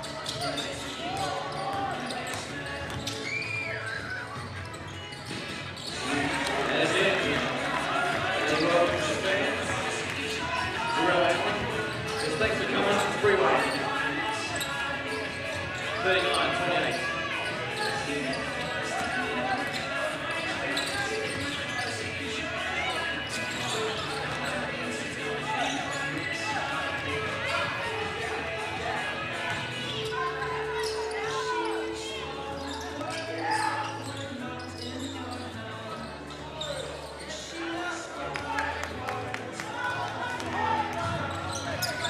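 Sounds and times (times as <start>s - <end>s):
indistinct shouts and chatter: 0.0s - 42.0s.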